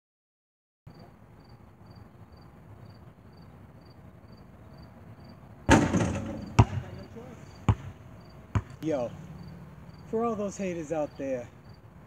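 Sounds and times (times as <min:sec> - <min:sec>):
crickets chirping: 0:00.9 - 0:12.0
basketball bouncing on asphalt: 0:05.6 - 0:10.0
basketball clanging off hoop: 0:05.7 - 0:07.1.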